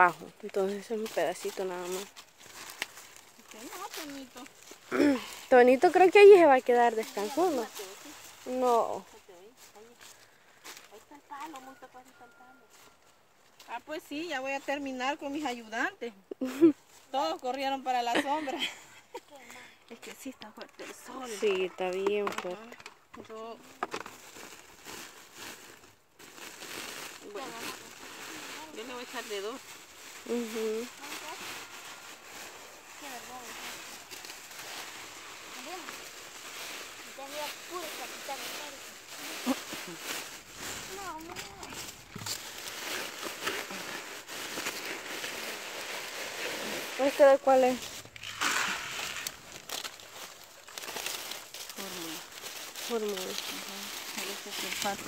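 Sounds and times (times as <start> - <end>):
plastic sack crinkling: 0.0 - 12.1, 20.9 - 55.0
small clicks and crackles: 2.0 - 4.8
hands scooping fertilizer: 26.4 - 55.0.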